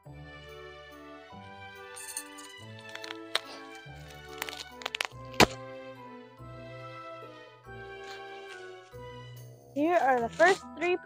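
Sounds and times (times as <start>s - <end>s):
background music with sustained notes: 0.0s - 11.0s
metal poles clicking and knocking: 2.0s - 5.6s.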